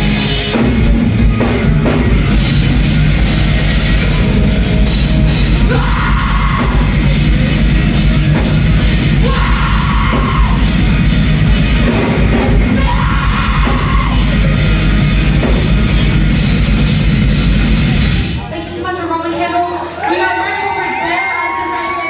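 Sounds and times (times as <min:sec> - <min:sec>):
rock band playing live: 0:00.0 - 0:18.8
person shouting vocals: 0:09.2 - 0:10.6, 0:12.7 - 0:14.3.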